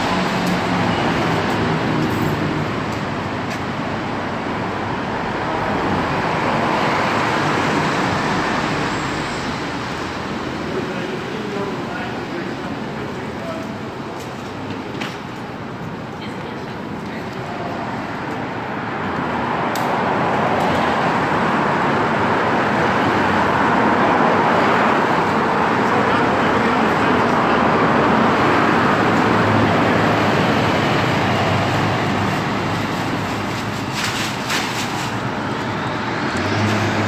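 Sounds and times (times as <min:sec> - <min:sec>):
road traffic passing: 0:00.0 - 0:37.0.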